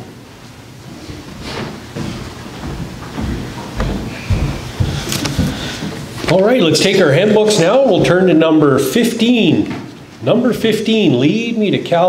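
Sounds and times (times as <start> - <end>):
footsteps as dull thuds: 0.4 - 8.4.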